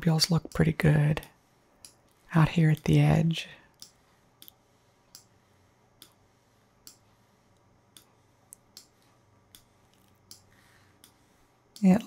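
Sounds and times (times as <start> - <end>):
low room hum: 0.0 - 12.0
computer mouse clicks: 3.7 - 5.3, 6.8 - 7.0, 7.6 - 11.9.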